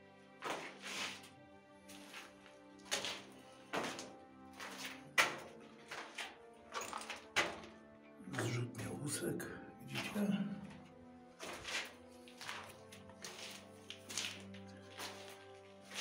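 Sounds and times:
sustained chords music: 0.0 - 16.0.

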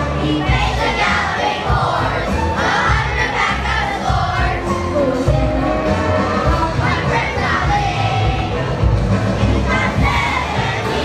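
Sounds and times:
children shouting and cheering: 0.0 - 8.6
backing music with bass beat: 0.0 - 11.0.

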